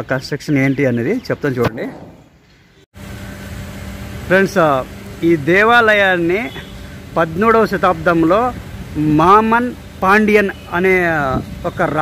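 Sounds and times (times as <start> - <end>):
constant low hum: 1.6 - 12.0
faint hiss: 3.0 - 12.0.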